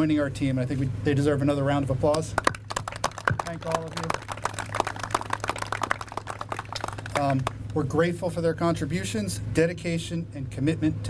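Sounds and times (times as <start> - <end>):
small group applauding: 2.1 - 7.9.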